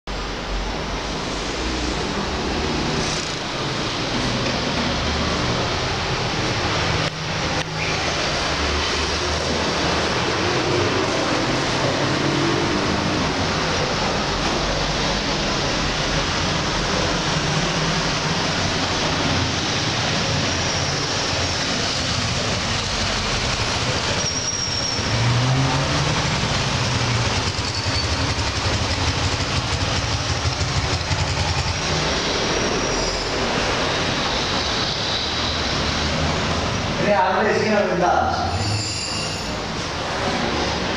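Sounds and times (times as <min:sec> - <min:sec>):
heavy street traffic: 0:00.0 - 0:40.9
high-pitched brake squeals: 0:24.1 - 0:25.3, 0:27.6 - 0:28.3, 0:32.5 - 0:36.1, 0:38.3 - 0:39.8.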